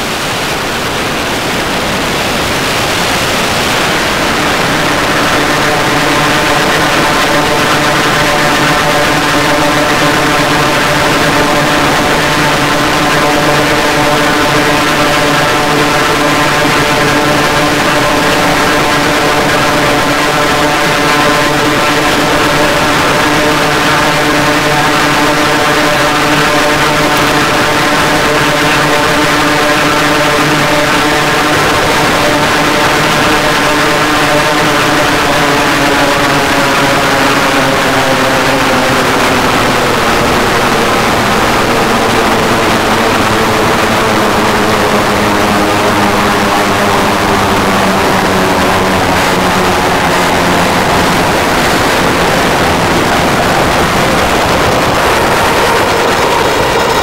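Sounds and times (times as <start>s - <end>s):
electronic drone chord: 0.0s - 57.0s.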